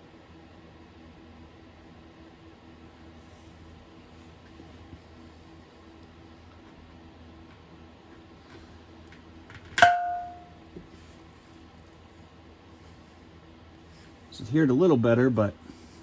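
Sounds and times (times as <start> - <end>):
low room hum: 0.0 - 16.0
sharp pop with metallic ring: 9.8 - 10.6.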